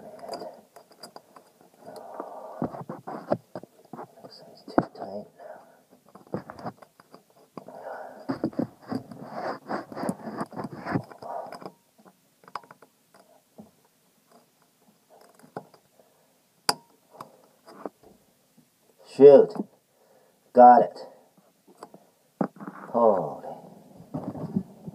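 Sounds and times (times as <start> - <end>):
rubbing on microphone: 2.2 - 5.2, 8.3 - 11.2, 22.4 - 24.9.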